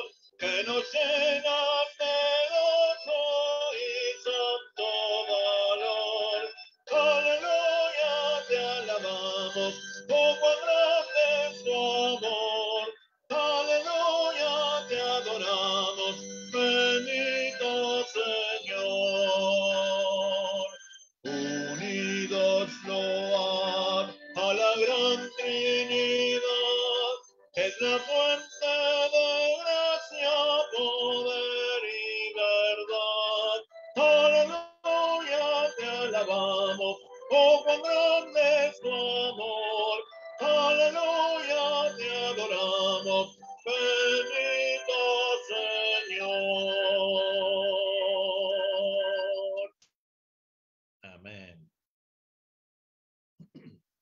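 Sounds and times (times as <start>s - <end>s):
hymn singing with accompaniment: 0.0s - 49.7s.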